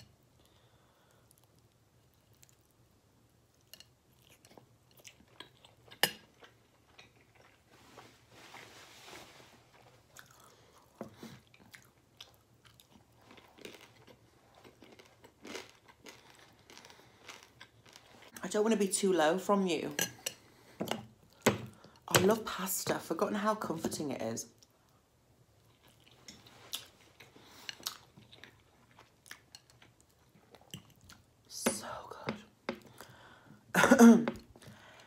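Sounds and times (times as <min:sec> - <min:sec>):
chewing crunchy pasta: 0:00.4 - 0:02.8, 0:03.4 - 0:08.1, 0:09.7 - 0:18.4, 0:25.6 - 0:31.4.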